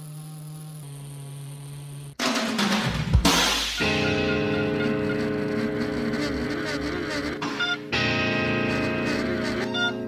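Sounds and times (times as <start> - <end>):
music with sustained chord: 3.8 - 6.0, 7.4 - 10.0.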